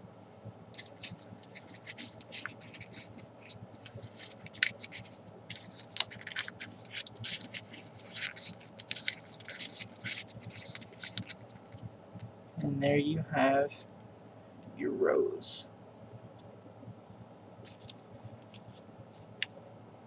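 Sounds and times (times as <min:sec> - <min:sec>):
paper crinkling and rustling: 0:00.8 - 0:11.8, 0:17.6 - 0:19.5.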